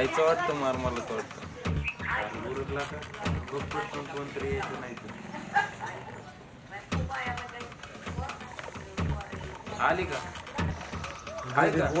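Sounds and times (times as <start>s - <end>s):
voices: 0.0s - 12.0s
dog barking: 5.3s - 6.2s.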